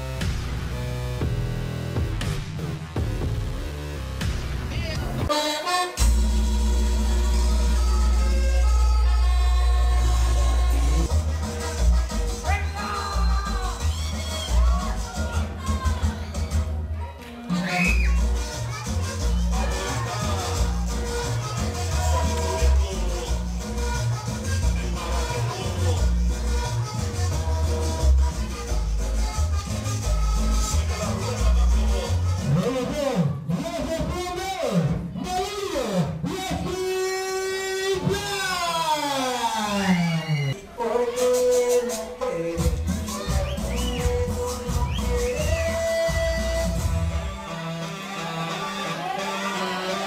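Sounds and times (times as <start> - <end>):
music with heavy bass beat: 0.0 - 5.4, 6.0 - 16.8, 18.1 - 32.6, 41.1 - 50.0.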